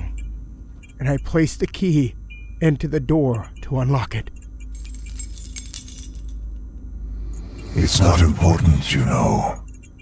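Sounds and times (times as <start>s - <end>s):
keys clicking in a door lock: 0.0s - 6.7s
low steady hum: 0.0s - 10.0s.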